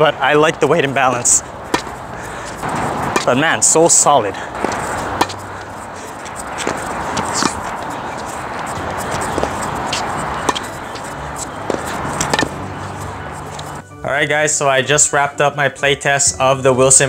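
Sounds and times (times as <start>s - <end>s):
tennis ball striking racket: 0.3s - 13.8s
background music: 8.5s - 17.0s.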